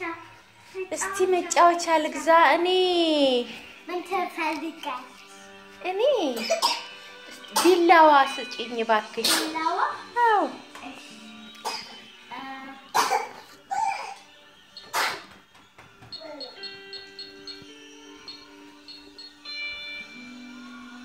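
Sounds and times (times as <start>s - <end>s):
simple electronic tune: 16.0s - 20.4s.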